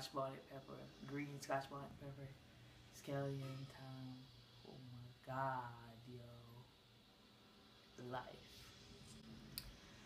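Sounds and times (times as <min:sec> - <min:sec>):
faint sharp click: 0:09.1 - 0:09.8.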